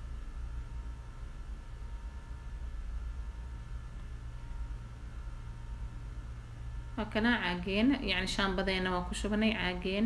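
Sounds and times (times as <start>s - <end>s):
faint background hiss: 0.0s - 10.0s
steady low hum: 0.0s - 10.0s.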